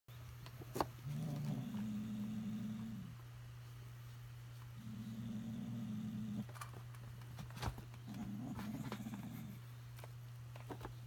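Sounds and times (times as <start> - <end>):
cat growling low: 1.0 - 3.2, 4.8 - 6.5, 8.1 - 9.6.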